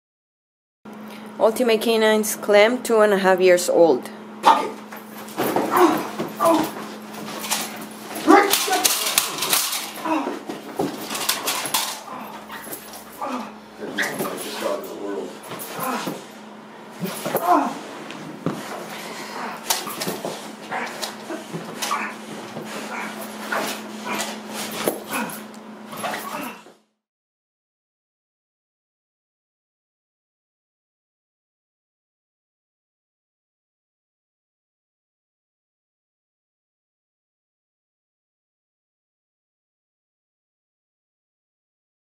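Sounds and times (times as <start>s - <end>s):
dog biting and thrashing bite suit: 4.4s - 26.7s.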